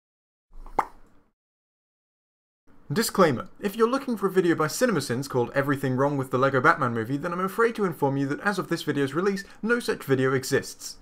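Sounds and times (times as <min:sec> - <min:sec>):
short pop: 0:00.6 - 0:01.0.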